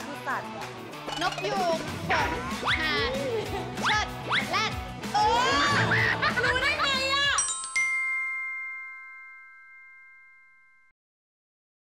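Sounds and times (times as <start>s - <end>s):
bell-like chime ringing: 1.1s - 1.9s, 7.4s - 10.9s.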